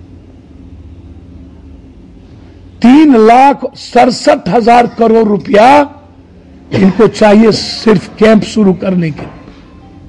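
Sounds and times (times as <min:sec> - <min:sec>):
low background rumble: 0:00.0 - 0:09.0
faint hum: 0:00.0 - 0:10.0.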